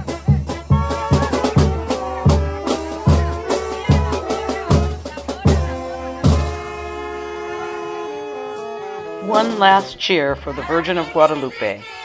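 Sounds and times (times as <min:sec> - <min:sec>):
live band music: 0:00.0 - 0:11.0
drum hit: 0:00.7 - 0:06.8.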